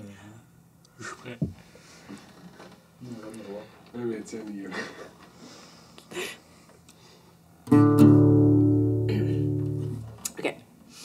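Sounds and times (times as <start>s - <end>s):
acoustic guitar chords strummed: 7.7s - 10.2s.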